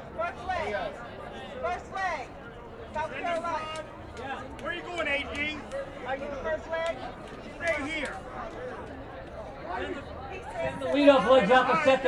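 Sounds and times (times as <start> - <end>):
crowd chatter: 0.0 - 12.0
people talking: 0.0 - 12.0.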